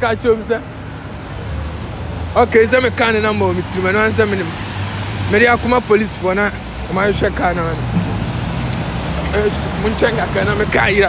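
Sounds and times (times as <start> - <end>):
city traffic rumble: 0.0 - 11.0
man speaking: 2.3 - 8.0, 8.8 - 11.0.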